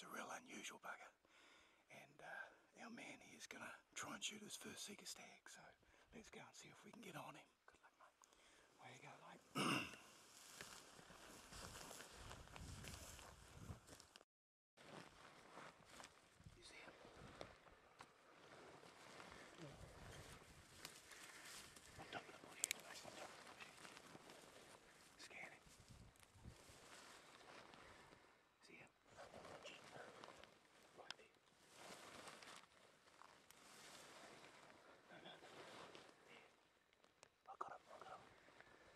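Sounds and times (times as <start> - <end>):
faint rustling: 14.8 - 28.4, 29.1 - 37.3.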